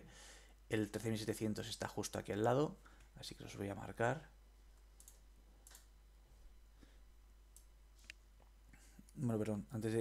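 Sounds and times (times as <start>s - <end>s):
faint computer mouse clicks: 4.8s - 5.9s.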